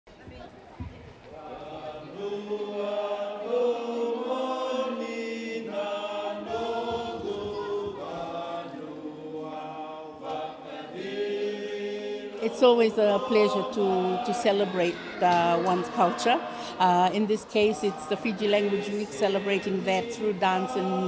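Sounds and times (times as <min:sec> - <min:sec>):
group of voices chanting: 0:01.3 - 0:21.0.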